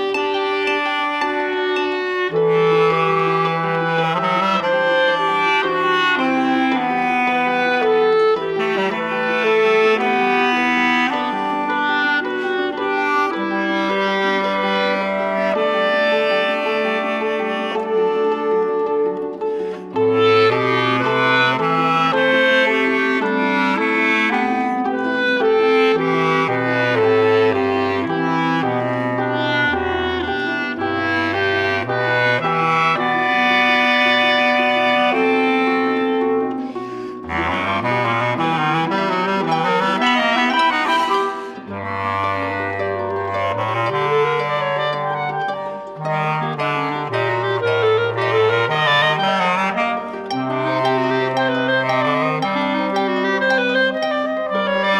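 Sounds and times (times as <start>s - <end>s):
clarinet duet: 0.0s - 54.9s.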